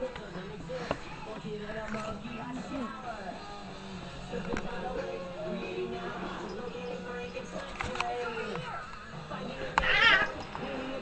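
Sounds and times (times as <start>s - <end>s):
cat yowling: 9.8s - 10.4s.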